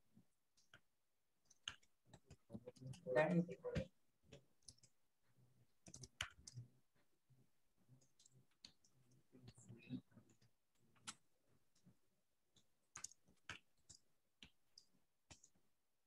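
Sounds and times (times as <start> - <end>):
keyboard typing clicks: 5.8 - 6.6.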